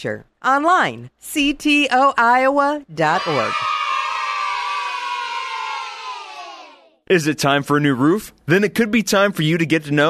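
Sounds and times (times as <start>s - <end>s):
children cheering: 3.0s - 7.0s.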